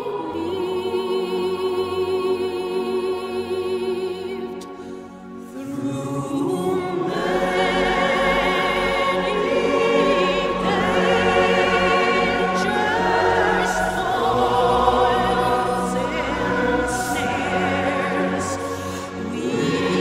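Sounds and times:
choir singing sustained notes: 0.0 - 20.0.

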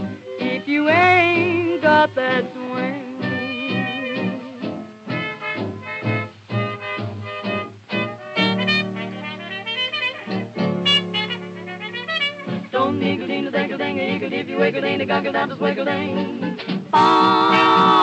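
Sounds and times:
jazz dance band playing: 0.0 - 18.0.

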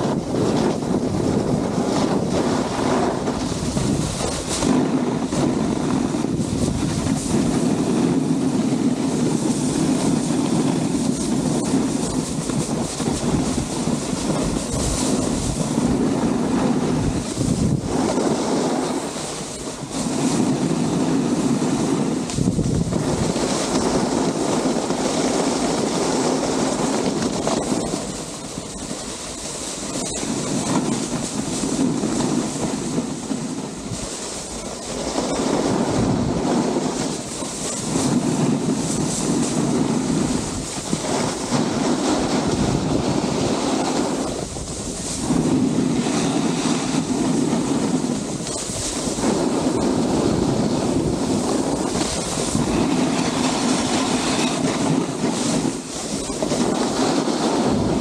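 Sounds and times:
snowboard scraping over snow: 0.0 - 58.0
wind on microphone: 0.0 - 58.0.

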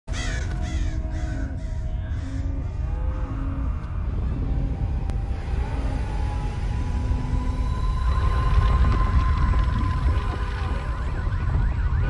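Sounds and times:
ominous soundtrack music: 0.1 - 12.0
deep steady rumble: 0.3 - 12.0.

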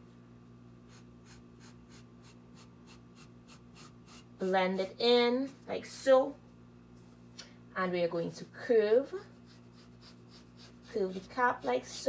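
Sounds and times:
marker scratching on paper: 0.9 - 4.3, 8.2 - 12.0.

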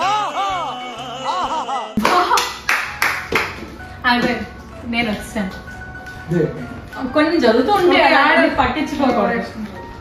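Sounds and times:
sharp claps: 2.0 - 3.6.

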